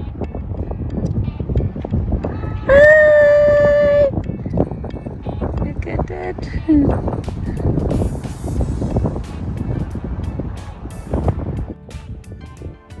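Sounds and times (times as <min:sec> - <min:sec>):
background music with sustained notes: 0:00.0 - 0:13.0
wind buffeting microphone: 0:00.0 - 0:13.0.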